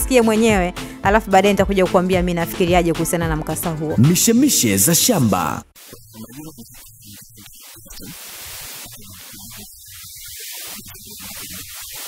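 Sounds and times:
static hiss: 0:04.3 - 0:12.0.

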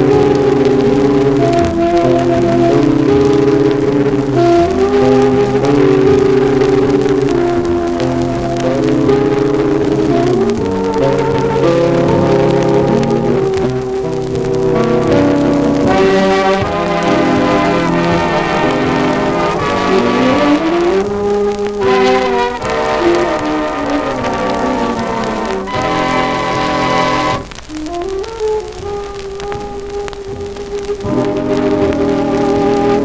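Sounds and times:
dance orchestra playing slow chords: 0:00.0 - 0:33.0
faint surface crackle: 0:00.0 - 0:33.0
horns sliding up: 0:15.8 - 0:28.4.

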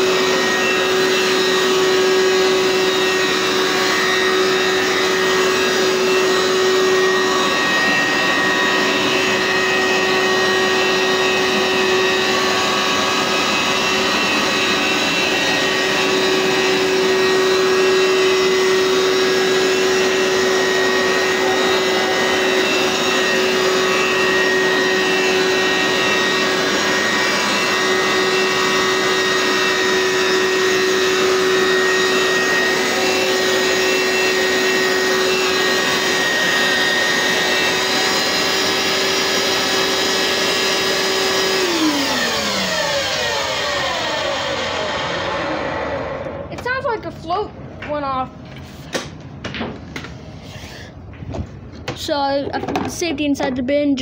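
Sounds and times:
carpet cleaner motor whine: 0:00.0 - 0:46.9.

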